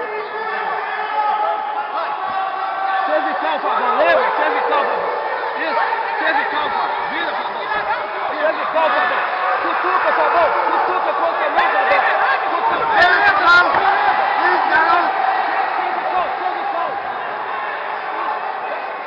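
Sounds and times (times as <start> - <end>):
spectators yelling: 0.0 - 19.0.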